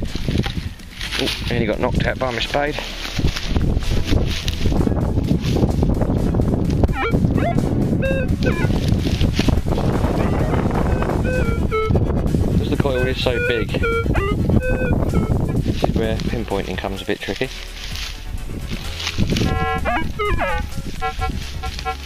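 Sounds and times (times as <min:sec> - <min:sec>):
steady rustling: 0:00.0 - 0:22.0
metal detector beeps: 0:06.9 - 0:08.7, 0:10.9 - 0:12.0, 0:12.9 - 0:15.3, 0:19.4 - 0:22.0.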